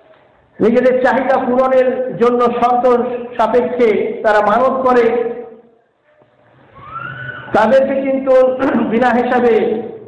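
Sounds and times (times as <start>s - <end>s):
man delivering a sermon: 0.6s - 5.8s, 7.5s - 10.0s.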